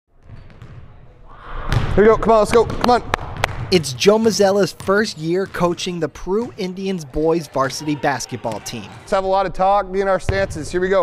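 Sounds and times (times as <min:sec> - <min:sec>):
basketballs bouncing on gym floor: 0:00.2 - 0:01.0, 0:01.7 - 0:07.1, 0:08.3 - 0:09.2.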